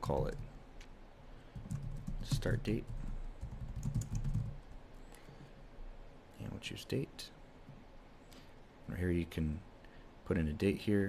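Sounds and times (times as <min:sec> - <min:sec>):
computer keyboard keystrokes: 0:01.6 - 0:04.6.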